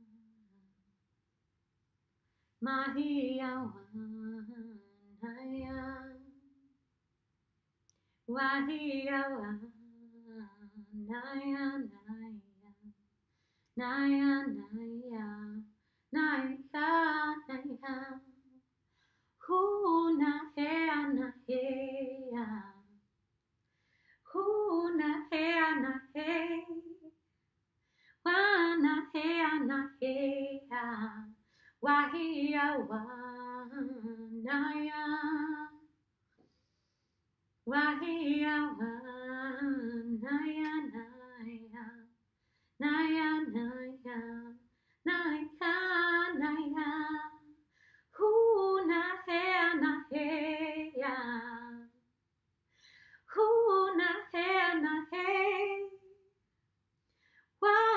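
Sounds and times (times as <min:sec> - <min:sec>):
woman singing wordless syllables: 0:02.6 - 0:06.4, 0:08.3 - 0:12.9
woman singing unaccompanied: 0:02.6 - 0:06.5, 0:08.3 - 0:12.9, 0:13.8 - 0:18.4, 0:19.4 - 0:22.9, 0:24.3 - 0:27.1, 0:28.3 - 0:35.8, 0:37.7 - 0:42.1, 0:42.8 - 0:47.6, 0:48.2 - 0:52.0, 0:53.3 - 0:56.1, 0:57.6 - 0:57.9.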